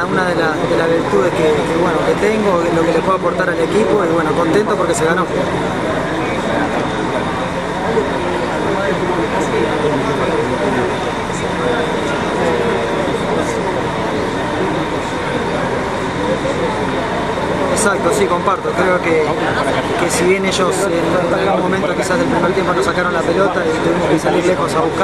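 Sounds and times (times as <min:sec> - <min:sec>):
faint steady hum: 0:00.0 - 0:25.0
indistinct voices talking: 0:00.0 - 0:25.0.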